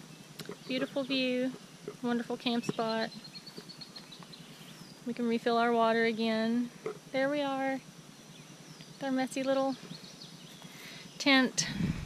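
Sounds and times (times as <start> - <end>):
bird trilling: 0.0 - 11.4
faint outdoor ambience: 0.0 - 12.0.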